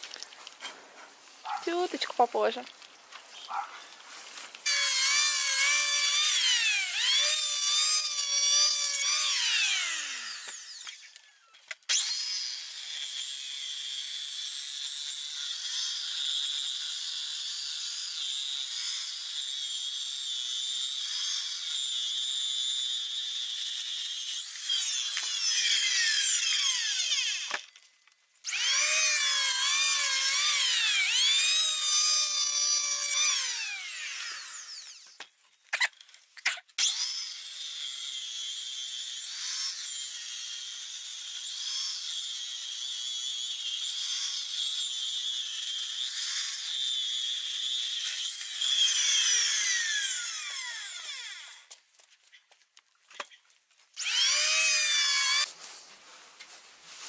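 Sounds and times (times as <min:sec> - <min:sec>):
circular saw cutting wood: 0:04.6 - 0:27.8, 0:28.4 - 0:35.9, 0:36.5 - 0:51.8, 0:54.0 - 0:55.5.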